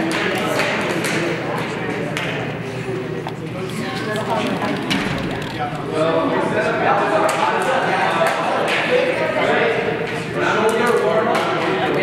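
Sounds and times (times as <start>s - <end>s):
indistinct talking voices: 0.0s - 12.0s.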